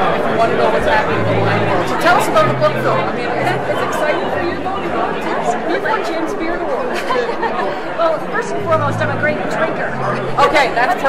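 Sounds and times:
crowd babble in a hall: 0.0 - 11.0.

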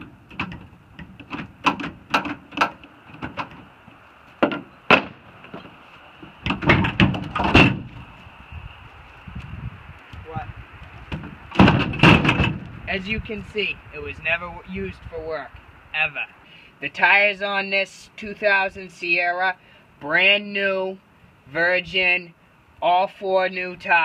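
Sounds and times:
steel tailgate dropping open: 0.0 - 3.7, 4.4 - 5.8, 6.4 - 8.0, 11.2 - 12.6
tailgate latch clicking and rattling: 0.0 - 3.7.

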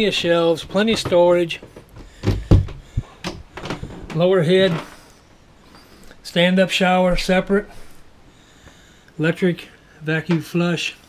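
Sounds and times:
wooden door thumps and knocks: 0.7 - 4.2.

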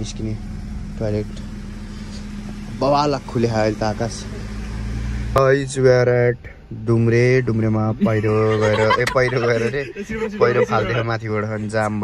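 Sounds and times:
person speaking: 7.9 - 12.0.

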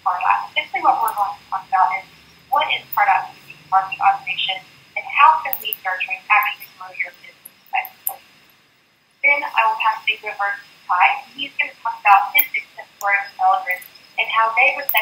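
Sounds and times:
woman talking into a microphone: 0.0 - 2.0, 2.6 - 8.0, 9.2 - 15.0.

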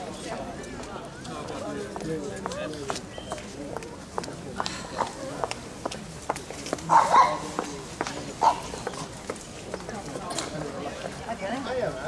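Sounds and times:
footsteps clicking on pavement: 0.7 - 10.0
dog barking: 6.9 - 7.5, 8.4 - 8.7.

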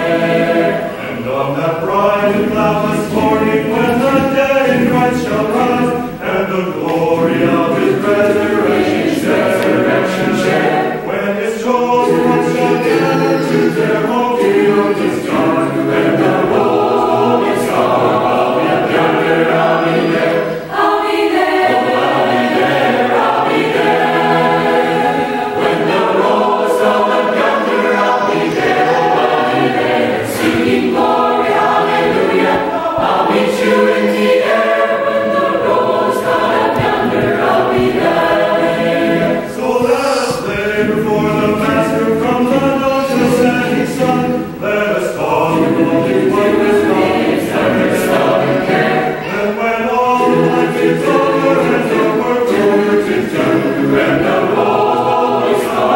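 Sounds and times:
mixed choir singing in harmony: 0.0 - 55.9.

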